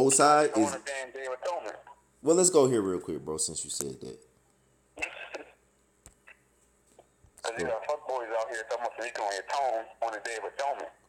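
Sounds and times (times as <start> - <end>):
person talking: 0.0 - 2.6, 7.4 - 11.0.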